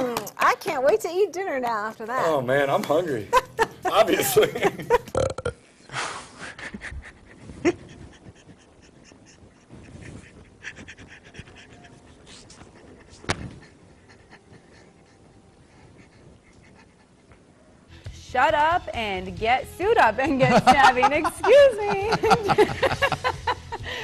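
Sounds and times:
man's stifled laughter: 0:06.4 - 0:17.1.

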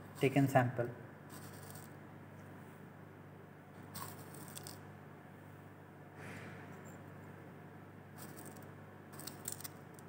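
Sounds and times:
spatula scraping powder in plastic jar: 0:01.3 - 0:01.9.

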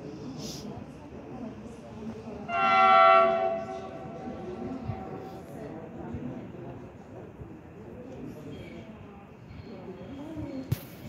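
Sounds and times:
train horn blast: 0:02.5 - 0:04.7.

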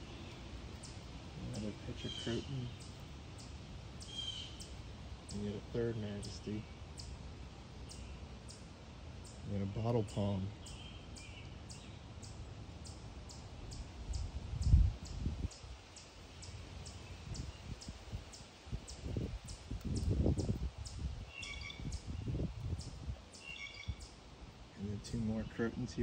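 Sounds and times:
bird chirps: 0:00.0 - 0:07.2, 0:07.8 - 0:24.2
bird high short calls: 0:00.0 - 0:07.2, 0:13.3 - 0:24.2
low microphone rumbles: 0:13.7 - 0:15.7, 0:17.1 - 0:23.2.

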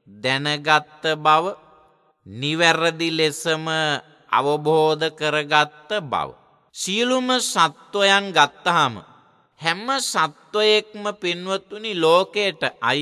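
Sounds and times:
monk chanting: 0:00.0 - 0:13.0.

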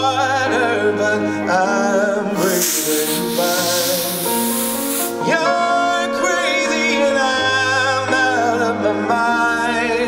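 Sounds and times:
band playing slow ballad: 0:00.0 - 0:10.0
man singing: 0:00.0 - 0:10.0
special-effects jet hissing: 0:02.4 - 0:05.2.

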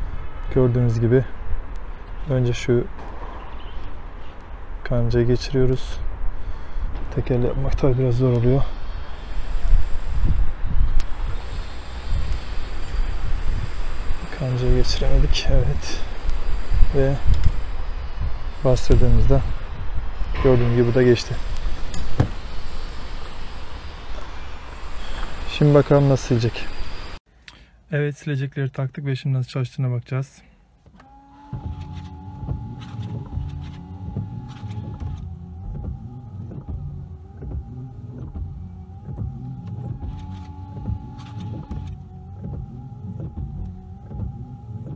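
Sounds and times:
wind rumbling on microphone: 0:00.0 - 0:27.1
wiper motor whine: 0:07.1 - 0:27.2, 0:31.0 - 0:44.9
wiper blades knocking: 0:31.4 - 0:44.9.

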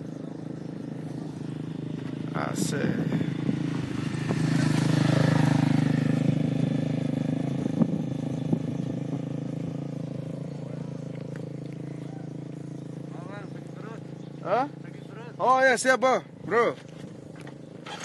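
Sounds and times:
small motorcycle engine passing: 0:00.0 - 0:18.0.

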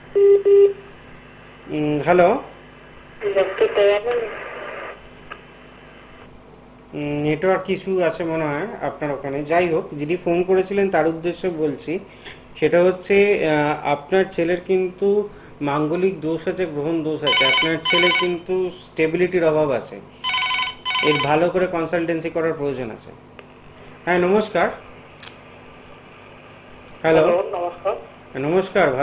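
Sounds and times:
person talking over telephone: 0:03.2 - 0:04.4, 0:21.0 - 0:21.4, 0:27.1 - 0:28.1
telephone line hiss: 0:17.3 - 0:18.4, 0:20.2 - 0:21.4.

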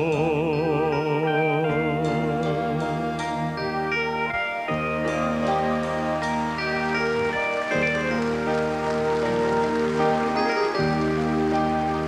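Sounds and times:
orchestra playing slow chords: 0:00.0 - 0:12.0.

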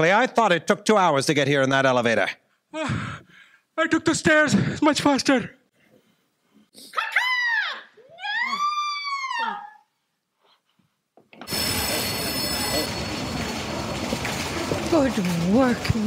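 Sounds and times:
long high cries: 0:07.2 - 0:09.9
thin high tones: 0:11.5 - 0:15.4.

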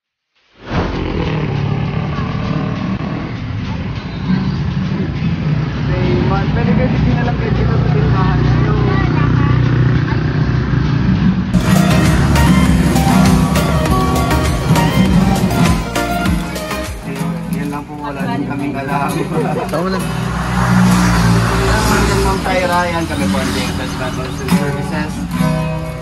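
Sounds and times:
low engine hum: 0:00.8 - 0:16.0
music: 0:11.6 - 0:20.7, 0:21.6 - 0:26.0
indistinct voices: 0:11.6 - 0:25.8
acoustic guitar strumming: 0:11.6 - 0:26.0.

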